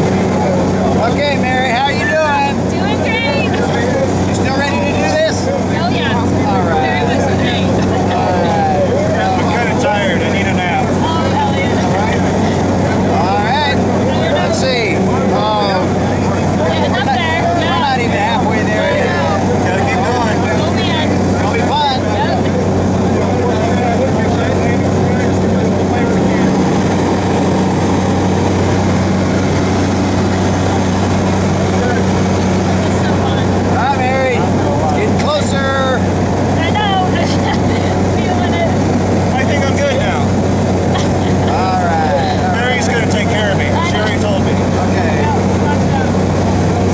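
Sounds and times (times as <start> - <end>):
people talking indistinctly: 0.0 - 46.9
plane engine and propeller drone: 0.0 - 46.9.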